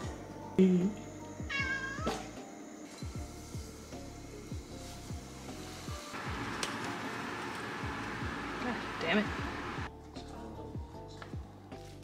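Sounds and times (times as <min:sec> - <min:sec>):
background music with steady beat: 0:00.0 - 0:12.0
cat meowing: 0:01.5 - 0:02.2.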